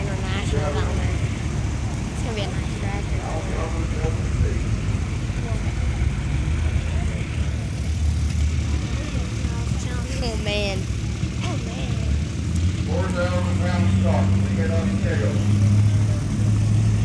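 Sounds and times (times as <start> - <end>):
people conversing: 0.0 - 16.7
tractor engine humming: 0.0 - 17.0.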